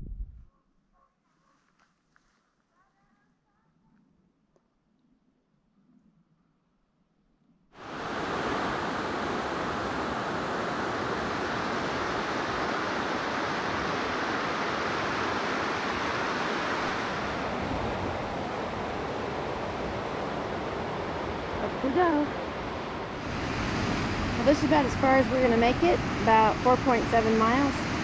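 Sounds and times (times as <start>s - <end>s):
white water rushing: 7.8s - 28.0s.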